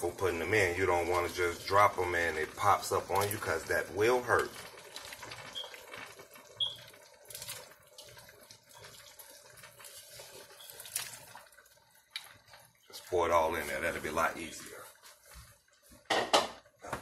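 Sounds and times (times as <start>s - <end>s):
broth boiling in pot: 0.0s - 17.0s.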